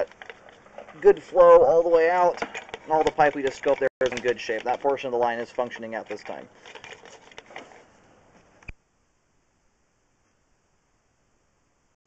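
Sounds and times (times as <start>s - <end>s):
faint handling noise: 0.0s - 8.8s.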